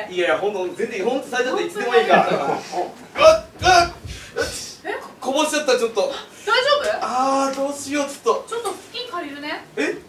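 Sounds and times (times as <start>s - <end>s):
man's loud vocal bursts: 3.2s - 4.8s.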